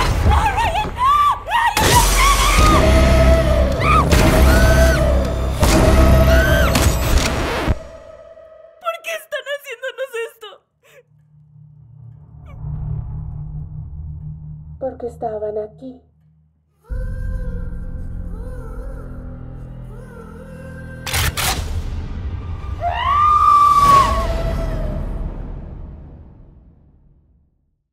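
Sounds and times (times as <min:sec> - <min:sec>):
heavy low rumble: 0:11.1 - 0:16.3.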